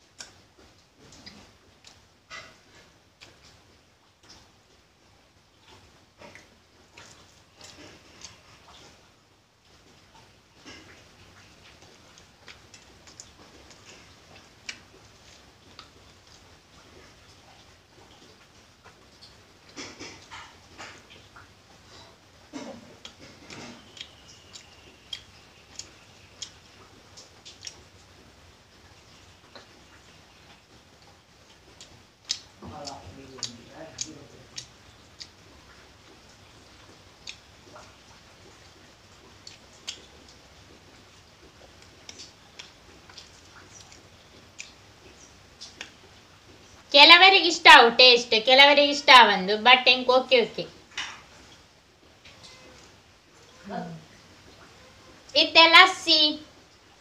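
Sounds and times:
mouth clicks and lip smacks: 0.2s - 2.0s, 17.0s - 28.2s, 31.0s - 40.8s, 41.5s - 46.6s.

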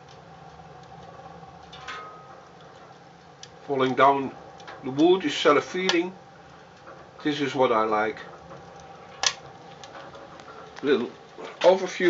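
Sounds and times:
fire crackling: 0.0s - 12.0s
stove fire rushing: 0.0s - 12.0s
sharp wood snap: 9.2s - 9.4s.

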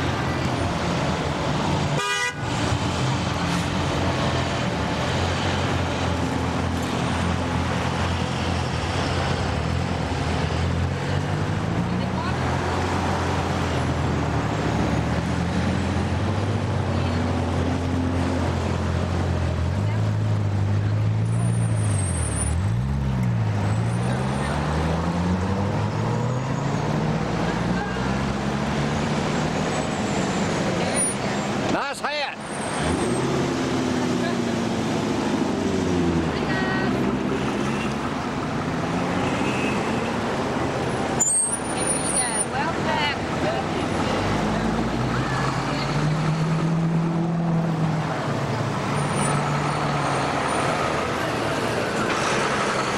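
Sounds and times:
cars passing by: 0.0s - 52.9s.

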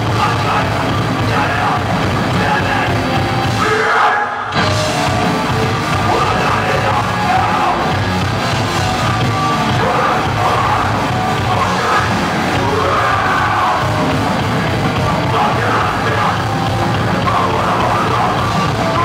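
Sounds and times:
distorted guitars: 0.0s - 19.0s
drums: 0.0s - 19.0s
metal band playing: 0.0s - 19.0s
yelled vocals: 0.0s - 19.0s.

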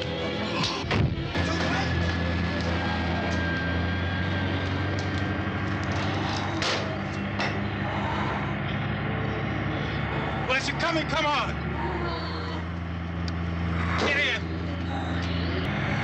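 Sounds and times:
vehicle engine humming: 0.0s - 16.0s.

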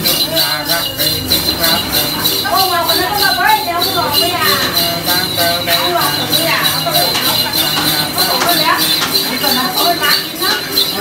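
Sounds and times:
bells shaken rhythmically: 0.0s - 11.0s
high ringing tone: 0.0s - 11.0s
man chanting: 0.0s - 11.0s.

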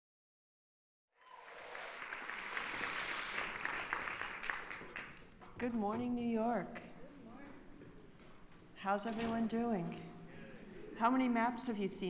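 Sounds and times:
audience applauding: 1.2s - 5.3s.

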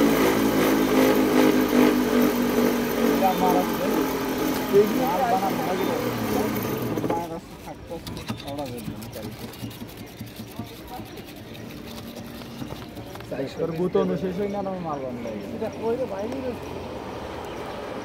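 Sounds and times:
cotton candy machine motor hum: 0.0s - 7.8s.

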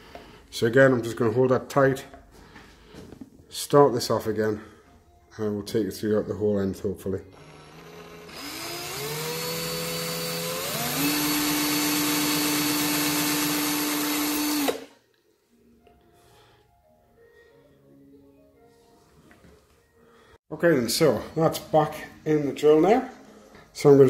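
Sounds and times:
cordless drill motor whine: 7.3s - 14.9s.

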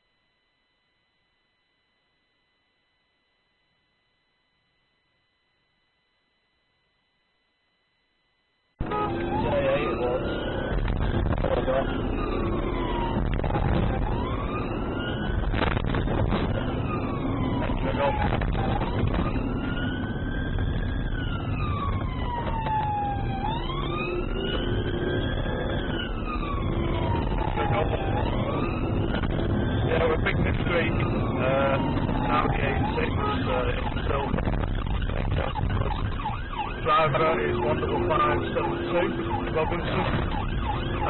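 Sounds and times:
loud car engine and road noise: 8.8s - 35.8s, 36.4s - 41.0s
police siren wailing: 8.8s - 41.0s.

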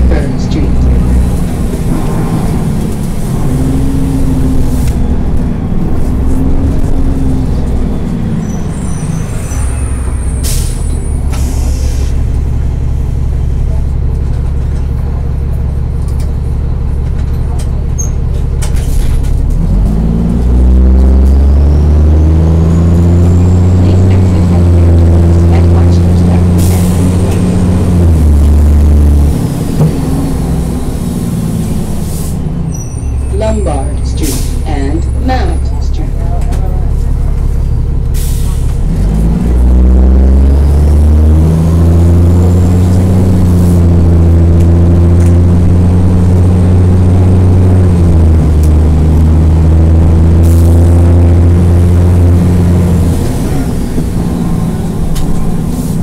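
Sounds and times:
bus diesel engine revving: 0.0s - 56.0s.

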